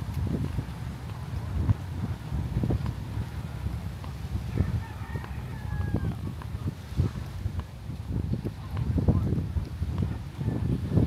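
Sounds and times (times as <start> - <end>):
wind rumble on microphone: 0.0 - 11.0
rooster crowing: 4.5 - 6.2.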